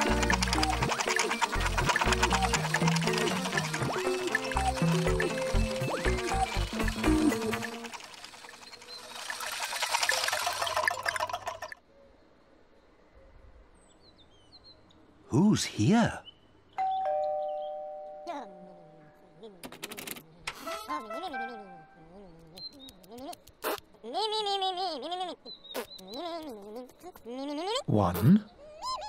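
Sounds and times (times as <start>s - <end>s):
voice-like calls: 0.0s - 11.8s
two-note doorbell chime: 16.8s - 18.6s
faint bird chirps: 22.0s - 23.4s, 25.4s - 27.2s.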